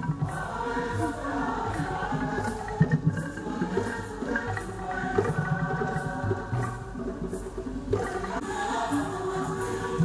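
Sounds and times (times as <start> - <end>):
choir singing a hymn: 0.0 - 10.0
steady percussive beat: 0.0 - 10.0.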